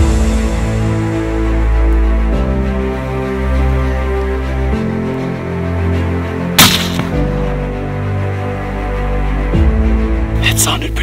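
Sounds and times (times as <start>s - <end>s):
background music: 0.0s - 11.0s
faint knock of bullet hit: 6.6s - 7.2s
suppressed rifle shot: 6.6s - 7.2s.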